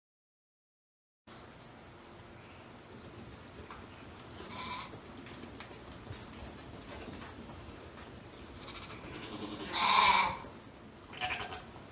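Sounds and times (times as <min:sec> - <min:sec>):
sheep bleating: 0:04.4 - 0:05.0, 0:08.6 - 0:10.5, 0:11.1 - 0:11.7.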